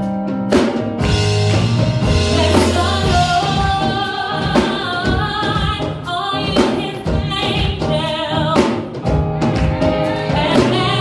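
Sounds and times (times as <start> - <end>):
instrumental accompaniment: 0.0 - 11.0
drum beat: 0.5 - 11.0
woman singing gospel: 2.2 - 8.9, 10.2 - 11.0.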